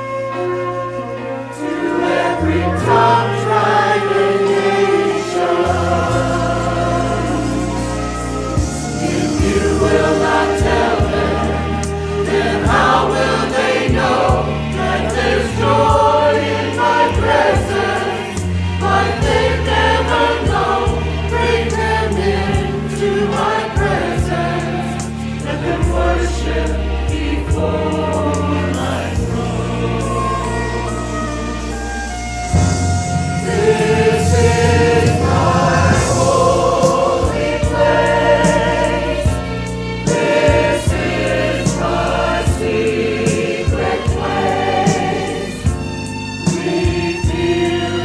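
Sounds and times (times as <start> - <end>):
instrumental accompaniment with bass: 0.0 - 48.0
mixed choir singing a hymn: 1.1 - 31.6, 33.0 - 48.0.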